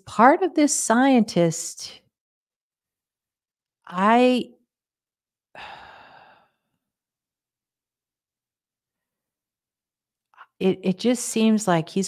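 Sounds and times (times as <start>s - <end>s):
woman sighing: 5.6s - 6.6s.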